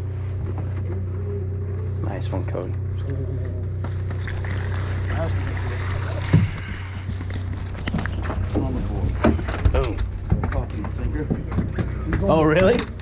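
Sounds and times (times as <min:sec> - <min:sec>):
boat engine humming: 0:00.0 - 0:13.0.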